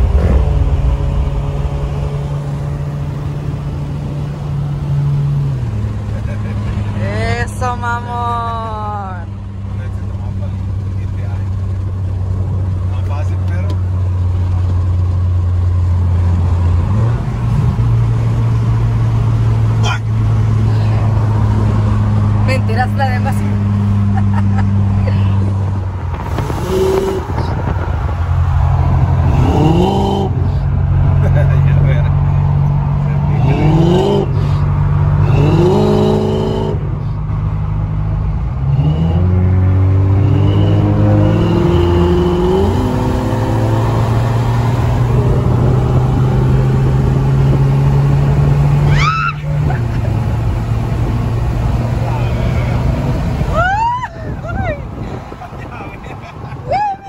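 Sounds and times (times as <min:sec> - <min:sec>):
car engine accelerating: 0:00.0 - 0:57.0.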